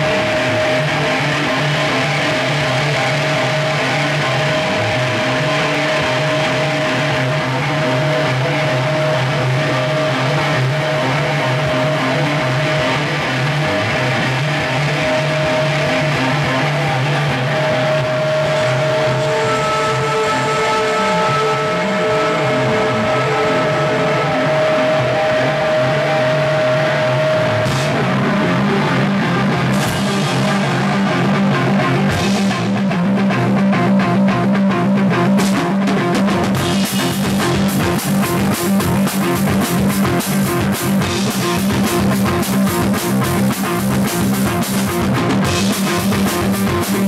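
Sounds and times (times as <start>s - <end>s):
electric guitars droning: 0.0s - 47.0s.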